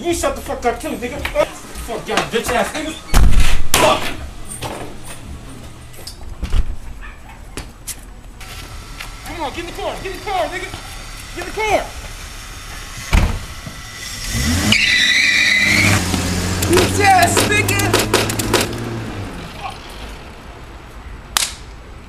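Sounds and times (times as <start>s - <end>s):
car door slamming: 2.5s - 5.0s, 13.0s - 13.8s
car engine revving: 8.4s - 20.6s
tyre squeal: 13.8s - 16.4s.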